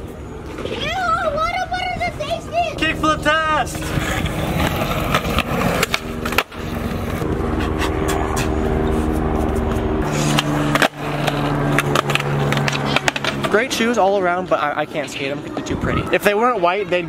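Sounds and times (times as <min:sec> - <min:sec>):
skateboard wheels rolling on concrete: 0:00.0 - 0:07.4, 0:08.4 - 0:17.0
skateboard tail clacks: 0:03.9 - 0:07.2, 0:10.1 - 0:13.6.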